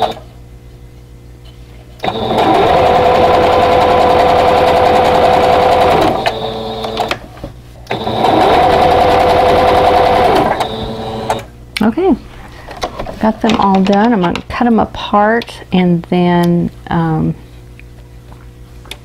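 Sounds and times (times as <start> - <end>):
electric sewing machine stitching: 0.0 - 0.2, 2.0 - 7.2, 7.9 - 11.5.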